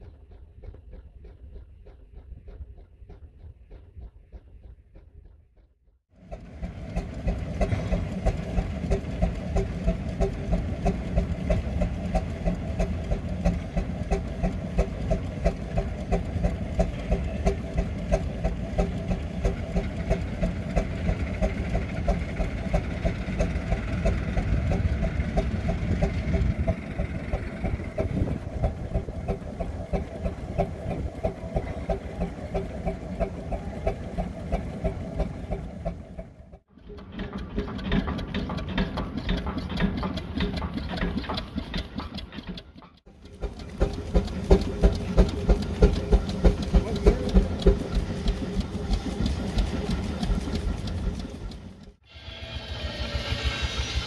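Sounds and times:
steam engine chuffing: 0.0s - 54.0s.

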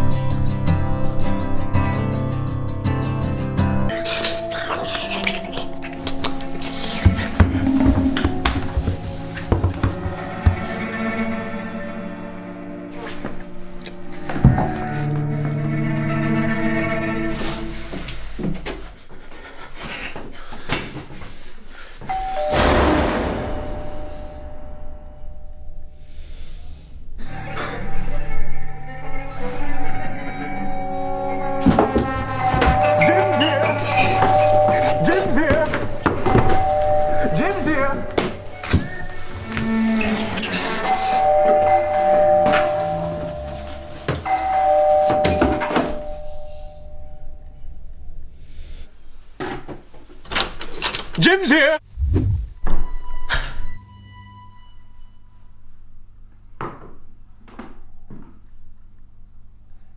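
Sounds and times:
dull knocks: 7.1s - 10.9s
two-tone doorbell chime: 22.1s - 22.8s, 32.4s - 38.6s, 41.0s - 47.6s
sudden loud hit: 22.5s - 25.3s, 52.0s - 52.8s.

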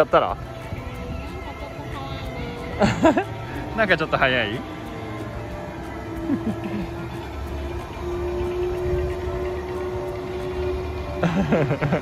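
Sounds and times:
ride mechanical rumble: 0.0s - 12.0s.

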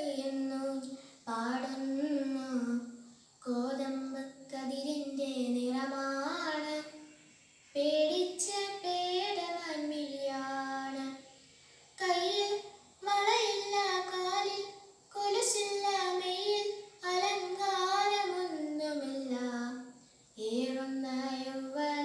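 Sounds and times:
girl singing unaccompanied: 0.0s - 22.0s.

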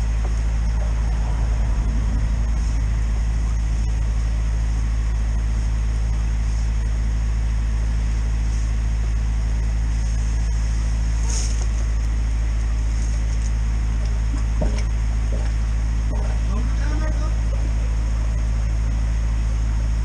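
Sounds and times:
engine and pump droning: 0.0s - 20.0s
brief high hiss: 11.2s - 11.7s.

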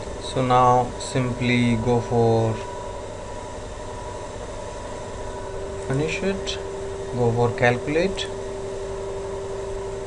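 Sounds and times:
background hum and hiss: 0.0s - 10.0s
faint steady tones: 0.0s - 10.0s
person speaking: 0.2s - 2.7s, 5.8s - 8.4s.

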